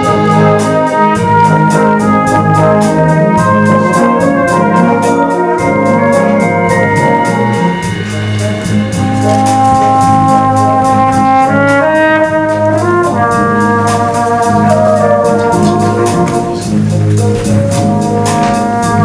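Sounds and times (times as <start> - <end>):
brass band playing ballad: 0.0 - 19.0
tenor horn solo: 0.0 - 19.0.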